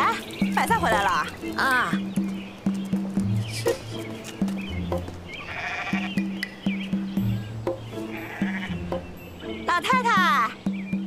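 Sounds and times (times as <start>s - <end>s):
goat bleating: 5.4s - 6.3s, 8.0s - 8.8s.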